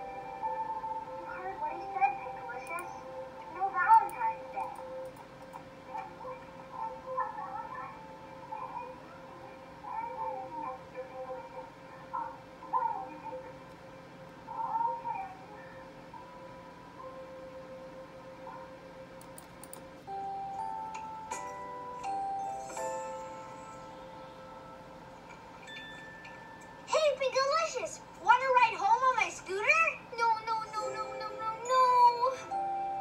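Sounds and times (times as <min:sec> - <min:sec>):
background music: 0:00.0 - 0:33.0.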